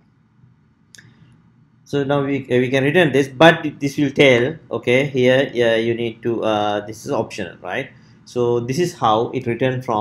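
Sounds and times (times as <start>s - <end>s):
faint room hiss: 0.0s - 10.0s
man speaking: 1.9s - 10.0s.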